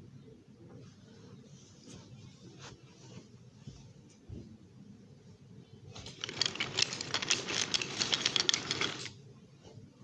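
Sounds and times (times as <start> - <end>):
toy train clattering on wooden track: 6.0 - 9.2.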